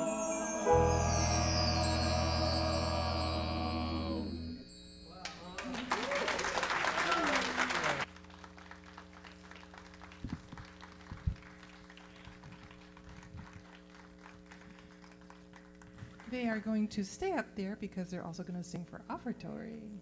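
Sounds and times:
audience applauding: 0:05.2 - 0:16.3.

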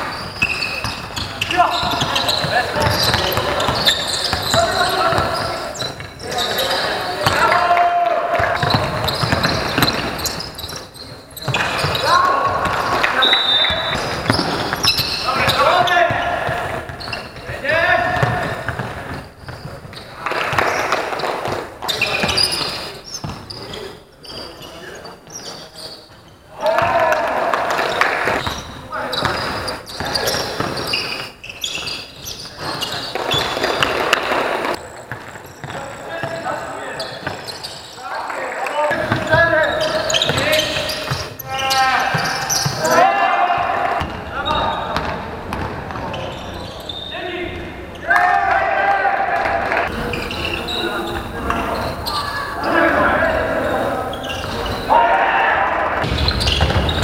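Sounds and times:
basketball bouncing on court: 0:00.0 - 0:06.5, 0:07.2 - 0:07.6, 0:08.3 - 0:22.4, 0:23.2 - 0:23.6, 0:32.5 - 0:36.5, 0:38.9 - 0:43.0, 0:43.6 - 0:46.2, 0:56.0 - 0:57.0
players shouting: 0:00.0 - 0:10.8, 0:26.5 - 0:30.8, 0:38.0 - 0:45.1, 0:47.1 - 0:57.0.

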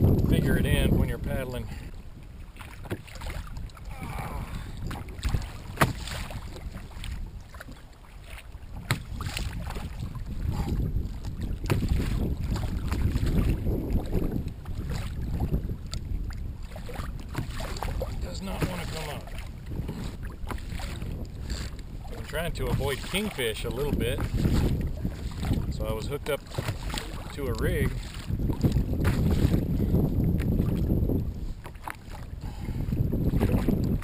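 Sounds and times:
water washing against kayak hull: 0:00.0 - 0:34.0
wind buffeting microphone: 0:00.0 - 0:34.0.

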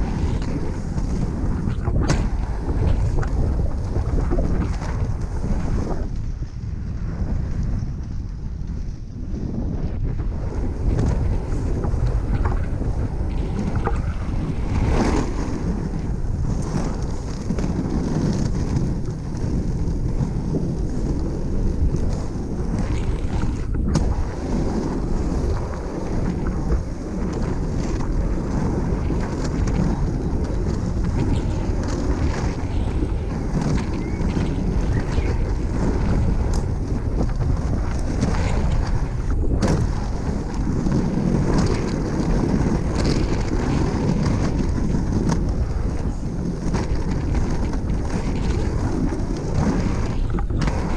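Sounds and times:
skate wheels rolling on asphalt: 0:00.0 - 0:50.9
wind buffeting microphone: 0:00.0 - 0:50.9.

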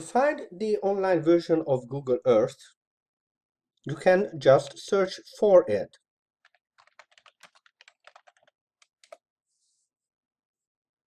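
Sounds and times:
faint keyboard typing: 0:06.4 - 0:09.2.

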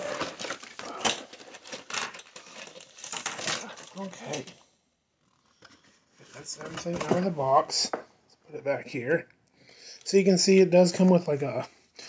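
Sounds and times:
cardboard and paper rustling: 0:00.0 - 0:04.6, 0:05.7 - 0:07.9.

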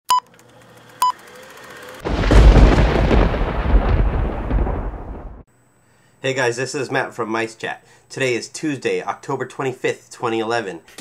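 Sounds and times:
loud boom with deep rumble: 0:02.1 - 0:05.4.

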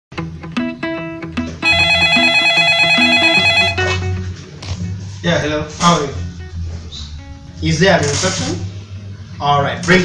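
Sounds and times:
plucked guitar music with bass: 0:00.2 - 0:05.0
telephone ringing: 0:01.6 - 0:04.1.

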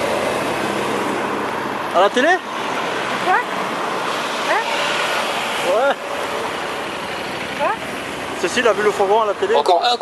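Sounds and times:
vehicles driving past: 0:00.0 - 0:10.0.

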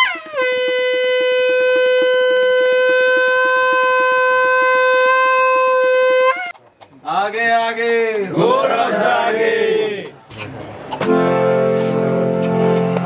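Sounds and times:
hand horn blast: 0:00.0 - 0:06.5, 0:10.9 - 0:13.0.

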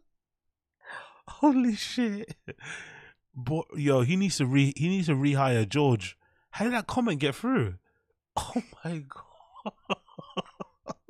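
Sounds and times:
man's stifled breathy laughter: 0:09.4 - 0:11.0.

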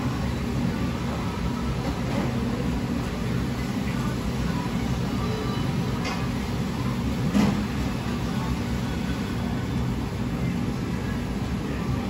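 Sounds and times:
low machinery hum: 0:00.0 - 0:12.0.

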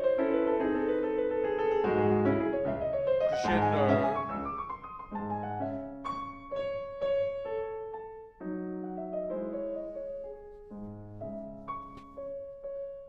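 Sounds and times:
slow classical piano: 0:00.0 - 0:13.0.

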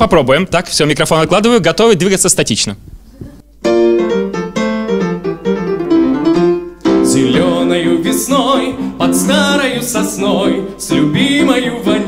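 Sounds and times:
grand piano chords and notes: 0:03.6 - 0:12.0
man singing: 0:07.0 - 0:12.0.

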